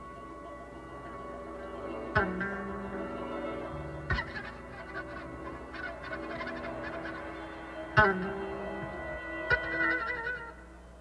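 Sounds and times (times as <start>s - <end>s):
electric guitar and bass notes: 0.0s - 10.6s.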